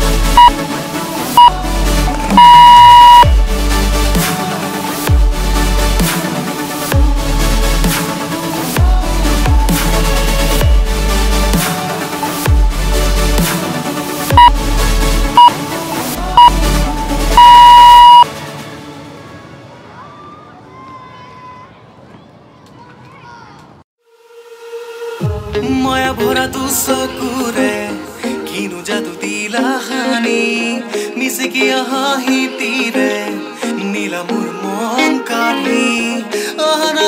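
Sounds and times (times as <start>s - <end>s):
interval timer beeps: 2.3s - 3.3s, 17.4s - 18.2s.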